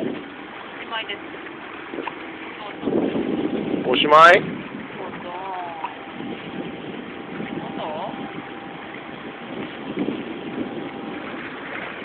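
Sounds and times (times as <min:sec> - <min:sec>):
wind noise on microphone: 0:00.0 - 0:00.4, 0:01.9 - 0:12.0
voices: 0:02.5 - 0:03.0, 0:03.9 - 0:06.1.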